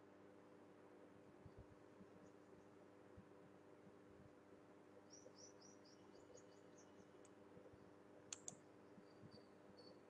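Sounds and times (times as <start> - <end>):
faint room hum: 0.0 - 10.0
small bird chirping: 5.0 - 7.3, 8.3 - 10.0.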